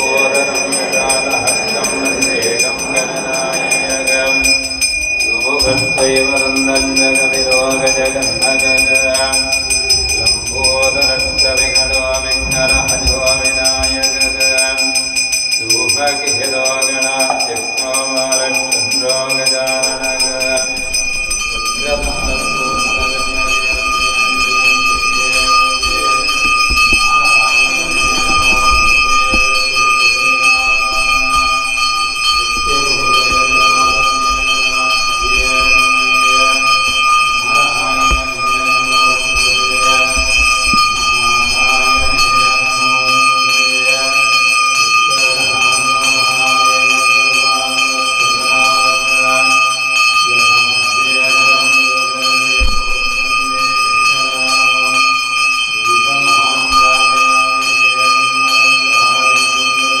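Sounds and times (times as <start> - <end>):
devotional music: 0.0 - 49.9
temple bell ringing: 0.0 - 60.0.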